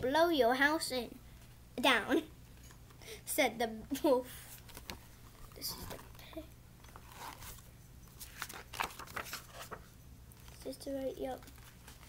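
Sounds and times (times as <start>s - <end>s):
book pages rustling: 4.5s - 12.0s.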